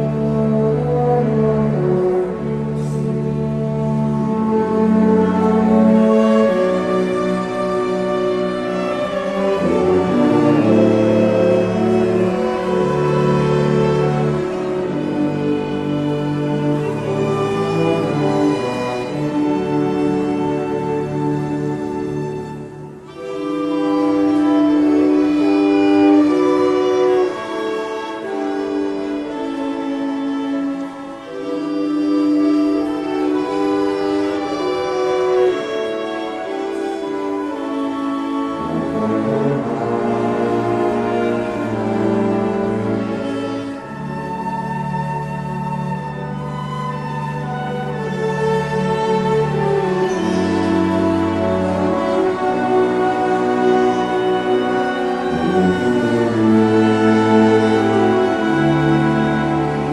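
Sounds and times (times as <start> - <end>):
brass sustained chords: 0.0 - 59.9
orchestra bowed strings slow passage: 0.0 - 59.9.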